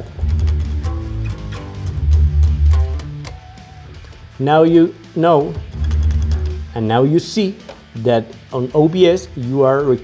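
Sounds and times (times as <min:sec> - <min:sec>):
distorted electric guitar: 0:00.0 - 0:04.4, 0:05.4 - 0:06.9.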